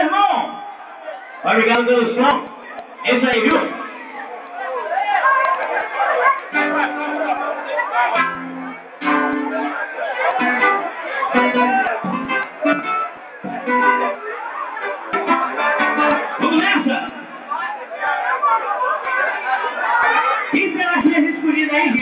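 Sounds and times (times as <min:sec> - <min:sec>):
crowd chatter: 0:00.0 - 0:22.0
plucked string instrument: 0:05.6 - 0:20.5.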